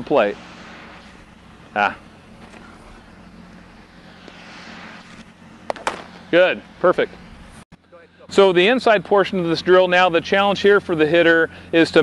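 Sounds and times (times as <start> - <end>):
baseball bat hitting ball: 5.6 - 6.3.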